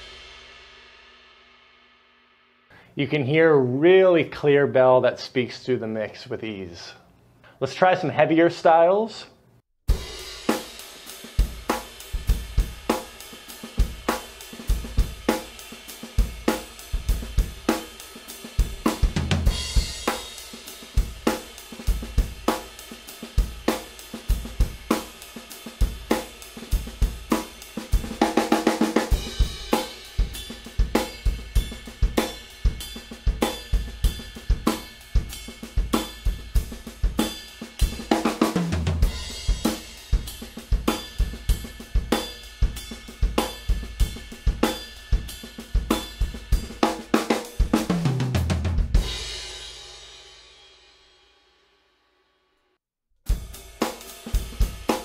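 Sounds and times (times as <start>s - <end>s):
drum fills: 0.0s - 1.2s, 9.9s - 50.4s, 53.3s - 55.0s
drum kit groove: 0.0s - 1.8s, 9.9s - 50.9s, 53.3s - 55.0s
ride cymbal wash: 9.9s - 38.4s.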